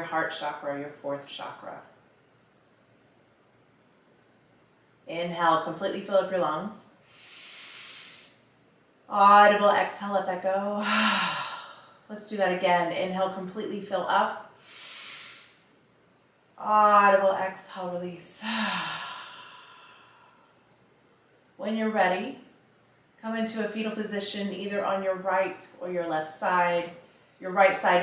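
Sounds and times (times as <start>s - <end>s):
woman inhaling deeply: 7.0s - 8.5s, 10.8s - 12.1s, 14.6s - 15.7s, 18.4s - 20.6s
woman sighing: 10.8s - 12.0s, 18.4s - 20.2s.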